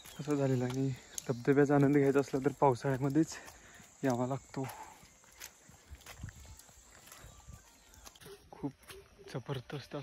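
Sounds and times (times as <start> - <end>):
footsteps on muddy path: 0.0 - 10.0.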